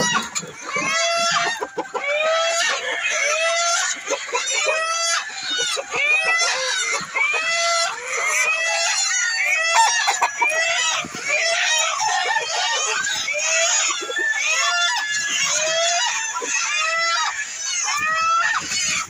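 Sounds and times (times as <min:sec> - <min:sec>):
hens and roosters clucking: 0:00.0 - 0:19.0.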